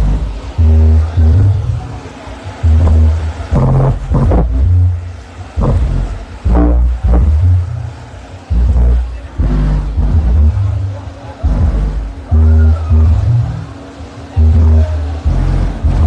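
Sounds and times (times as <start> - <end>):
vocal line: 0.0 - 5.0, 5.6 - 13.7
deep bass notes: 0.0 - 16.0.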